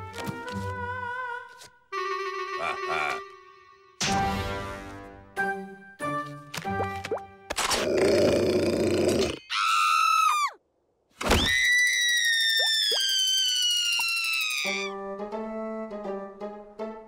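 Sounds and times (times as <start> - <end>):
cartoon musical stabs: 1.9 - 4.0.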